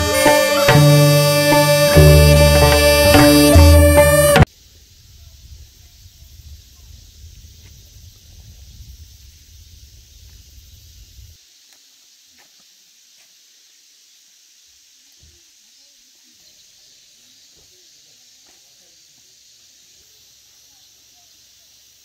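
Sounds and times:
faint steady hiss: 0:00.0 - 0:22.0
wind rumbling on microphone: 0:04.9 - 0:11.4.

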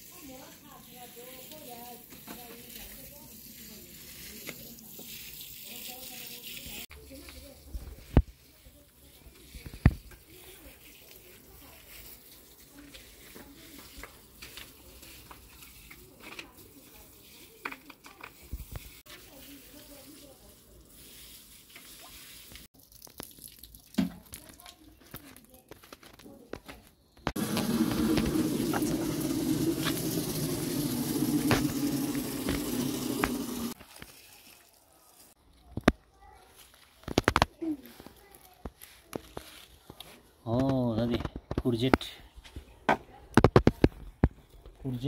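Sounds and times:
water showering onto soil: 0:00.0 - 0:25.5, 0:27.3 - 0:35.7.

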